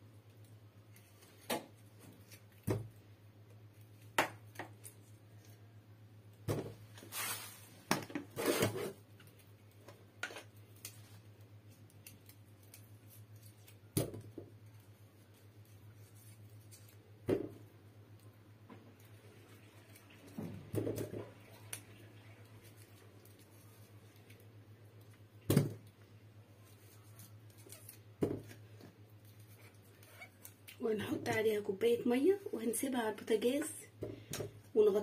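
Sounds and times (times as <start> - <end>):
rustling: 6.8 - 14.0, 14.6 - 17.1, 26.5 - 30.8.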